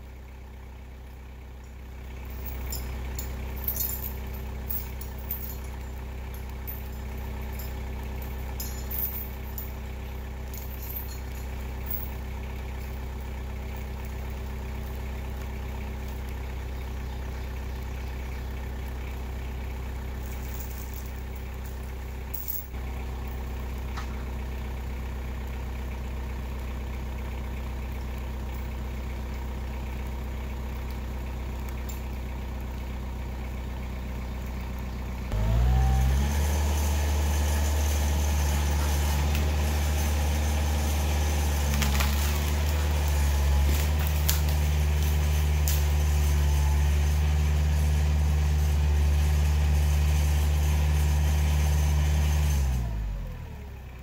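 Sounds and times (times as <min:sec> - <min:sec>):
engine idling: 0:00.0 - 0:54.0.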